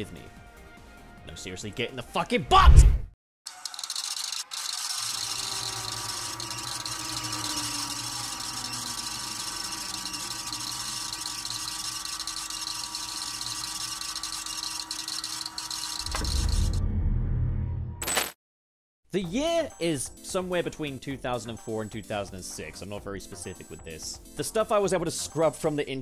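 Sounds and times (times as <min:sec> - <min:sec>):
whirring hissing machine sound: 0:03.5 - 0:16.8.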